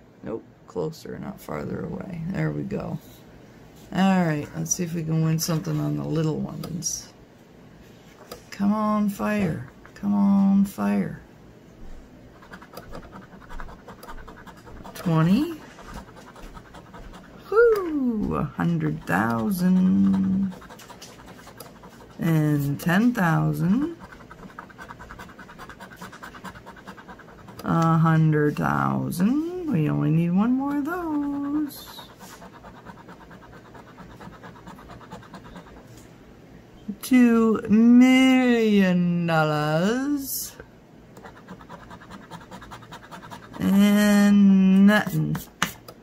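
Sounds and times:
coin scraping scratch ticket: 0:12.4 - 0:17.5, 0:18.7 - 0:28.0, 0:30.8 - 0:35.9, 0:41.2 - 0:43.9.

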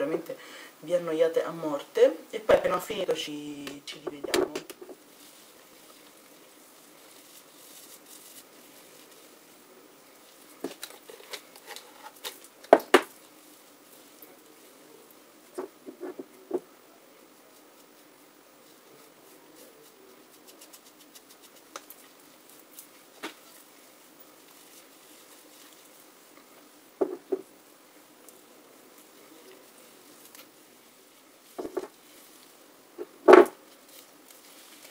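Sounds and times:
gloved hands handling wet hair: 0:02.7 - 0:16.4, 0:17.4 - 0:32.8, 0:33.6 - 0:34.9.

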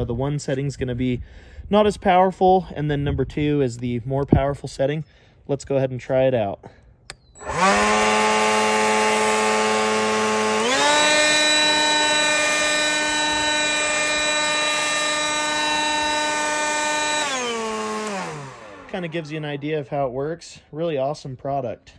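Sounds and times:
electric leaf blower whining: 0:07.4 - 0:19.7.

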